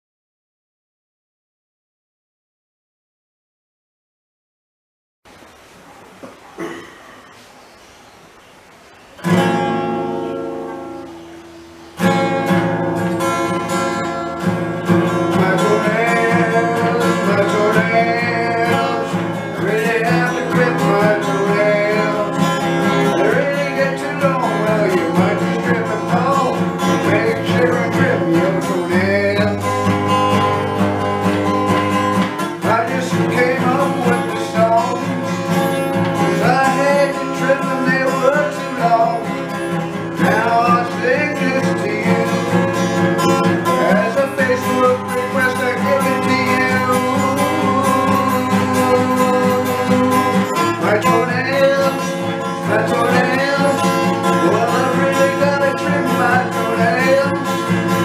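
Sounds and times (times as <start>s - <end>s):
acoustic guitar strumming: 9.2s - 58.0s
man singing: 14.8s - 31.1s, 32.4s - 58.0s.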